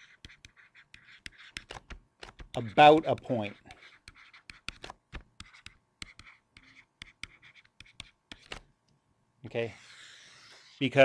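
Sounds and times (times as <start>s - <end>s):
stylus tapping and scratching: 0.0s - 8.7s, 9.8s - 10.8s.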